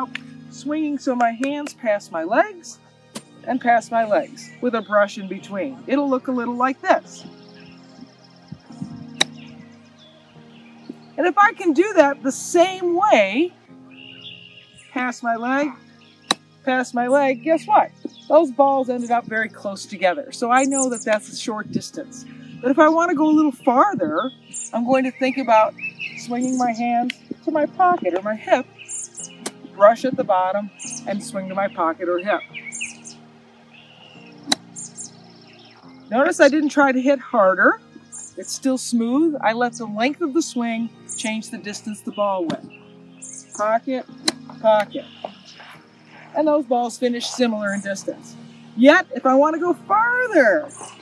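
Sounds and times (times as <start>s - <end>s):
golf club striking ball: 9.2s - 9.5s, 34.4s - 35.0s.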